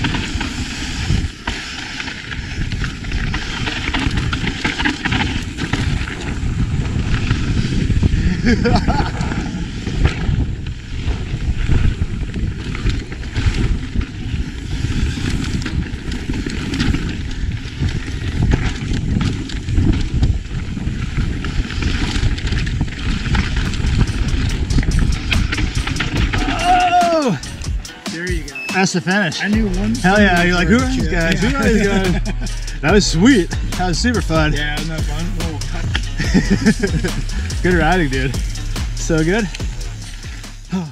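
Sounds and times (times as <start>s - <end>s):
wind on microphone: 0.0s - 27.9s
tyres rumbling over dirt and rocks: 0.0s - 28.0s, 29.7s - 40.9s
bike rattling knocks: 15.5s - 28.0s.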